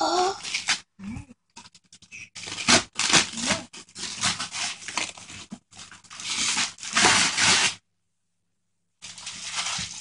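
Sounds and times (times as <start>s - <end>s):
wrapping paper crinkling and tearing: 0.2s - 0.9s, 1.6s - 7.8s, 9.0s - 10.0s.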